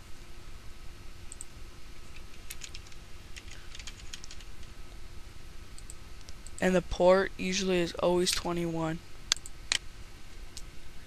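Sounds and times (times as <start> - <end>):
steady low hum: 0.0 - 11.0
computer keyboard typing: 2.1 - 4.6.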